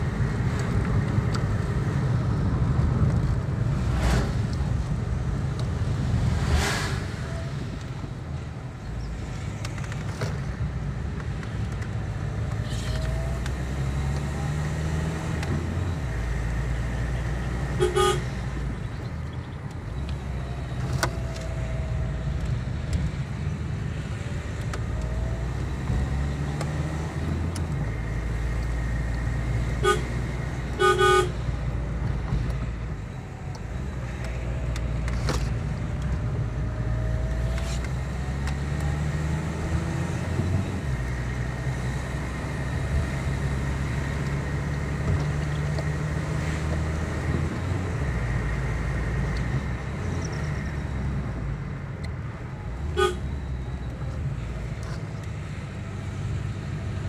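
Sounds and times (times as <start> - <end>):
vehicle engine and road noise: 0.0 - 57.0
car horn toots: 17.8 - 18.3, 29.8 - 31.4, 52.9 - 53.4.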